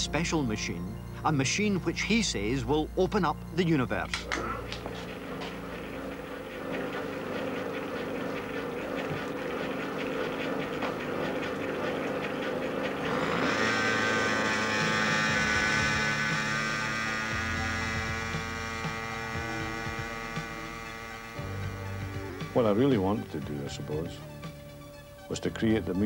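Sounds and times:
mechanical hum with rapid ticking: 0:00.0 - 0:25.6
loud drone rich in overtones: 0:00.0 - 0:26.0.

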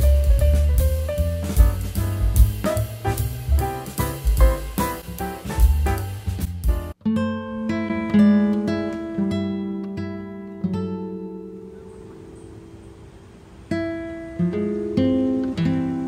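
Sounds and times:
busy music track with drums: 0:00.0 - 0:07.0
slow plucked guitar: 0:00.0 - 0:12.5, 0:13.7 - 0:16.0.

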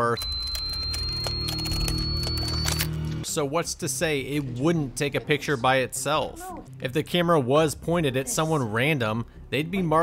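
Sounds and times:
camera flash charging whine: 0:00.0 - 0:03.2.

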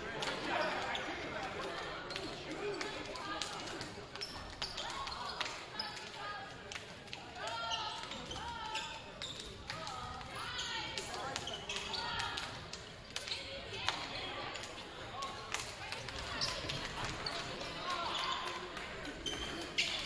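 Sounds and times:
chatter of people: 0:00.0 - 0:20.0.

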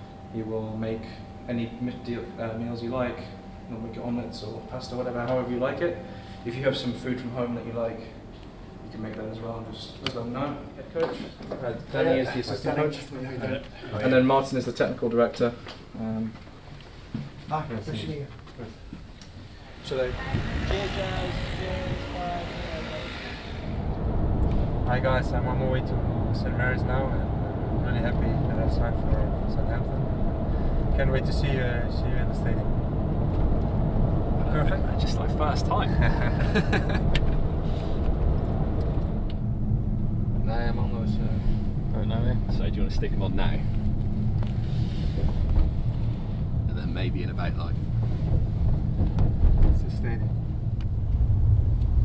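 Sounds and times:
van engine rumbling: 0:19.0 - 0:52.0
indistinct voices: 0:19.5 - 0:36.9.

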